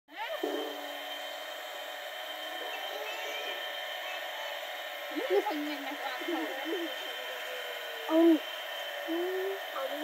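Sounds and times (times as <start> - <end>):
pump motor hum: 0.1 - 10.0.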